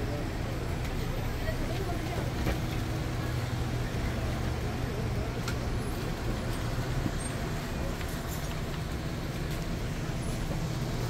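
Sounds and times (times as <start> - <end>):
low street rumble and hum: 0.0 - 11.0.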